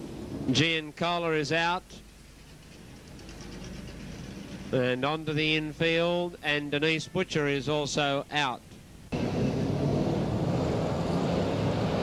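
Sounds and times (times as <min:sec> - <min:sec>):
muffled car engines on track: 0:09.1 - 0:12.0.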